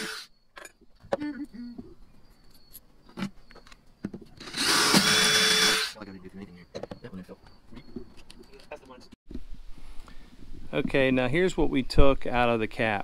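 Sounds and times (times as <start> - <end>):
power drill boring: 0.0 - 0.3, 4.4 - 6.0.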